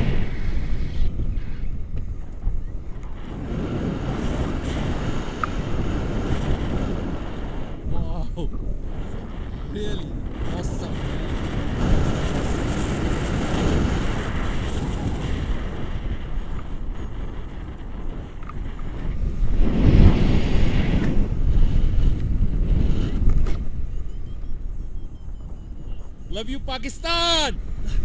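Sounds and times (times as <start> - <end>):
wind rushing over microphone: 0.0 - 28.0.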